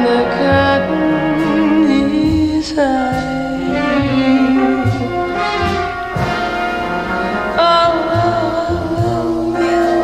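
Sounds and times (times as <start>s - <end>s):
brass: 0.0s - 10.0s
orchestral chords: 0.0s - 10.0s.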